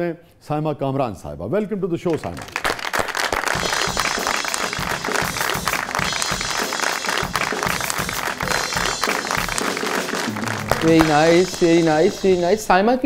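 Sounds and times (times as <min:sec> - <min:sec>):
hand clapping: 0:02.1 - 0:12.5
studio music: 0:03.4 - 0:13.0.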